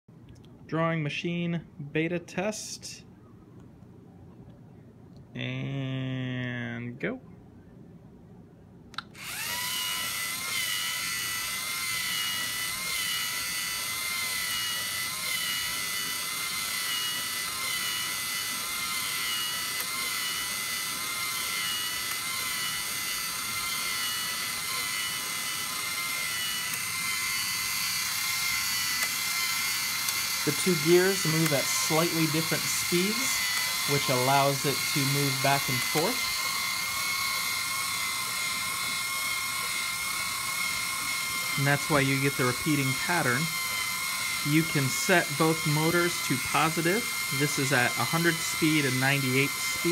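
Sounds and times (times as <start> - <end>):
servo motors whining: 9.2 - 49.9.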